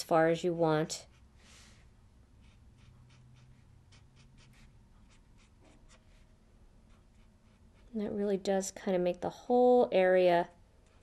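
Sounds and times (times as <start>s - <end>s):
marker scratching on cardstock: 1.0s - 6.3s, 6.9s - 7.9s.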